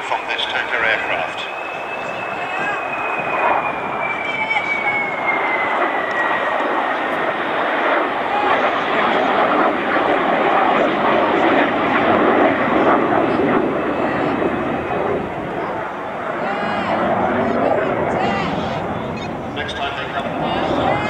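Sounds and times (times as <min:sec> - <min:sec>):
high jet whine sliding down: 0:00.0 - 0:21.0
jet engines rushing: 0:00.0 - 0:21.0.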